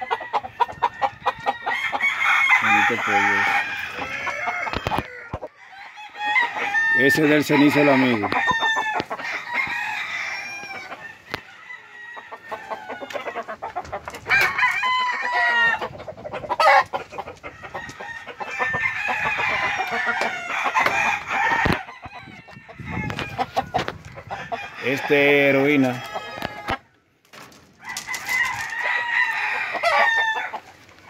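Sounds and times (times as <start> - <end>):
rooster clucking: 0.0 - 27.0, 27.8 - 31.0
roosters crowing: 0.0 - 31.0.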